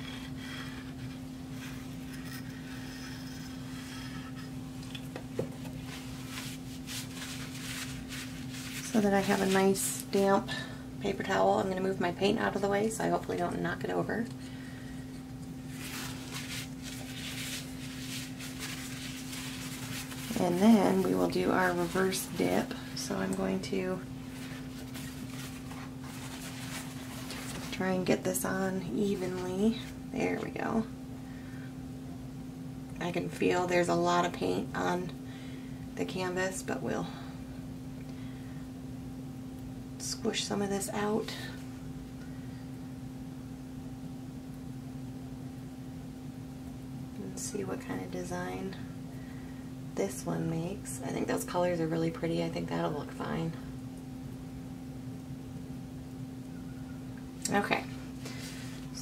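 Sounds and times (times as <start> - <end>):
steady low hum: 0.0 - 59.0
paper towel rustling: 0.9 - 10.3, 15.6 - 30.5.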